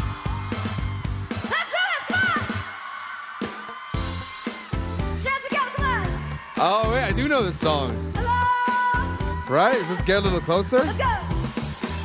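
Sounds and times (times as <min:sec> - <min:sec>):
live pop band: 0:03.4 - 0:12.0.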